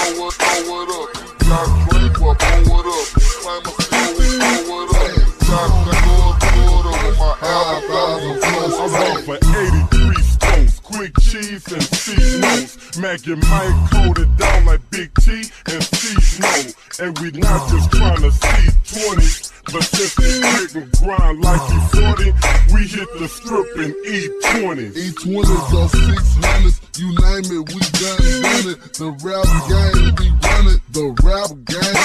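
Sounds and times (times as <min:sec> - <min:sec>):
beat with deep bass hits: 0:00.0 - 0:07.5, 0:08.4 - 0:23.1, 0:24.5 - 0:32.0
pitched-down rap vocal: 0:00.0 - 0:32.0.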